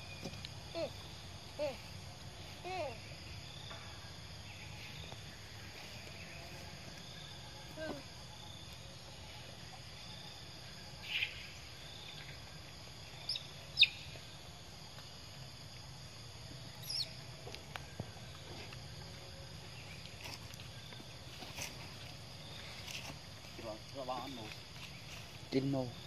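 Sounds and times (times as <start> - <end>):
insect chorus: 0.0 - 26.0.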